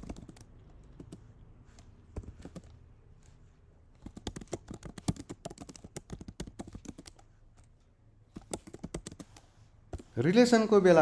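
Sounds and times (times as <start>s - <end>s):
typing on computer keyboard: 0.0s - 2.8s, 4.0s - 7.7s, 8.3s - 10.1s.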